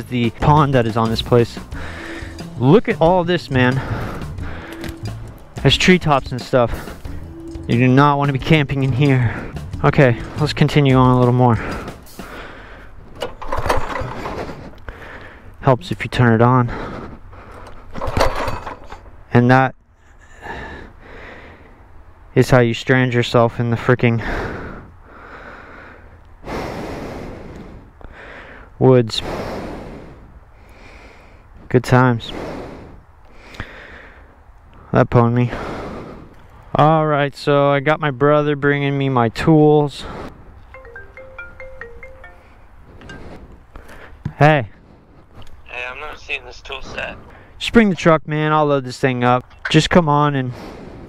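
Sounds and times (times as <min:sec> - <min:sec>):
engine recoil cord pull: 0:13.2 - 0:14.5
marimba-like phone ringtone: 0:40.7 - 0:43.4.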